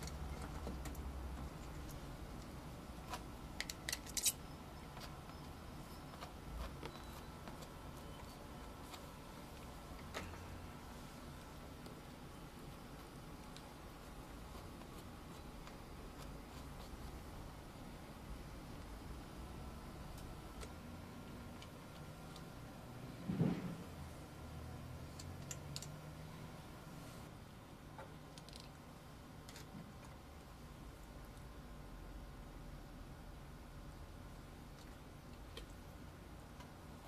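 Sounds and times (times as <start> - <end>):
faint room hiss: 0.0 - 37.0
low steady hum: 0.0 - 37.0.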